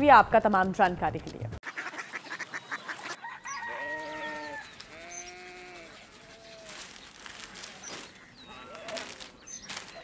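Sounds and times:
rooster crowing: 0:03.2 - 0:04.7.

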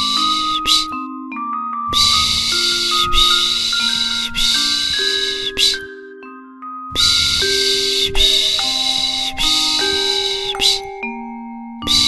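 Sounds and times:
soft bell-like chiming: 0:00.0 - 0:12.0
breathy shushing: 0:01.9 - 0:05.9, 0:07.0 - 0:11.0.

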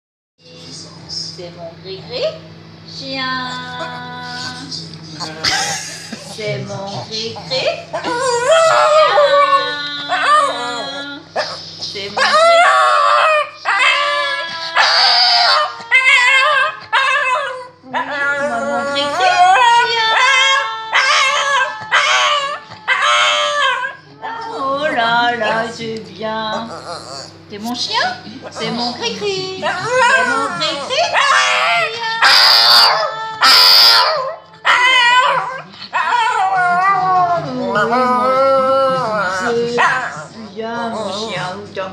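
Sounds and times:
dog howling: 0:07.5 - 0:25.8, 0:26.5 - 0:41.7.

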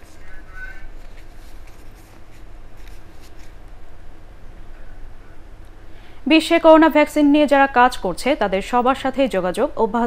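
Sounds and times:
faint clicks and rustles: 0:00.0 - 0:03.8.

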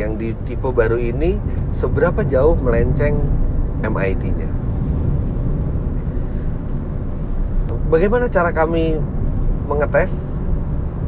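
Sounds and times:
car tyres and wind rumble: 0:00.0 - 0:11.0.

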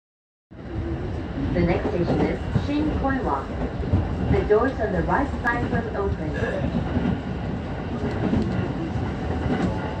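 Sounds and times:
train wheels rumbling on track: 0:00.5 - 0:10.0.

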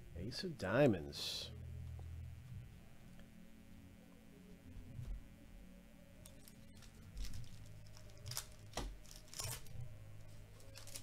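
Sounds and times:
foil wrapper crinkling and tearing: 0:06.2 - 0:09.7, 0:10.6 - 0:11.0
cards being handled: 0:06.2 - 0:09.8, 0:10.6 - 0:11.0.

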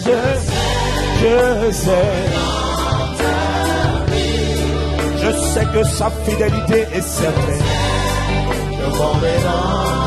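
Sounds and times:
bass notes: 0:00.0 - 0:10.0
choir singing: 0:00.0 - 0:10.0.

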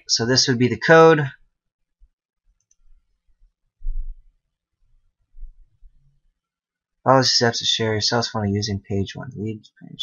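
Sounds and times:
man speaking: 0:00.0 - 0:01.4, 0:07.0 - 0:10.0.

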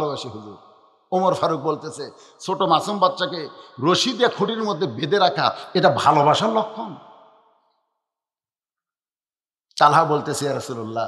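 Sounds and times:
man speaking: 0:00.0 - 0:07.0, 0:09.8 - 0:11.0.

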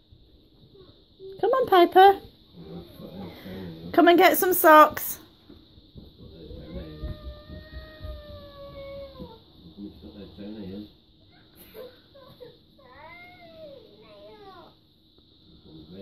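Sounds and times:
girl whining cries: 0:06.6 - 0:09.4, 0:11.3 - 0:14.7.

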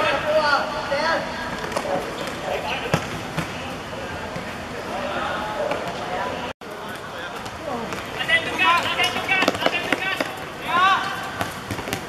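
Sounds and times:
players calling: 0:00.0 - 0:12.0.

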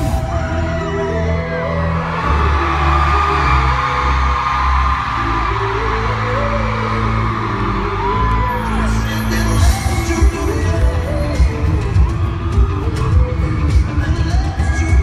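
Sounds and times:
crowd whooping: 0:00.0 - 0:15.0
loud live pop music: 0:00.0 - 0:15.0
male singer: 0:08.4 - 0:15.0.

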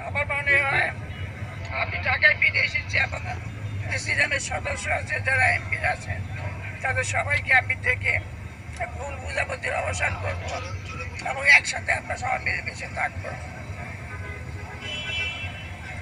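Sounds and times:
elderly woman speaking: 0:00.0 - 0:01.0, 0:01.7 - 0:13.6.

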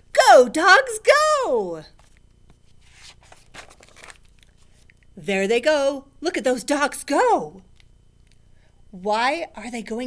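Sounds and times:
paper page turning: 0:02.0 - 0:04.9.

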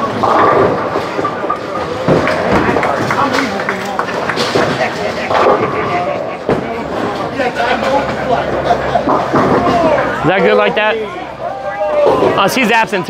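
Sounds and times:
bowling balls rumbling on lanes: 0:00.0 - 0:10.9
people talking: 0:01.1 - 0:13.0.

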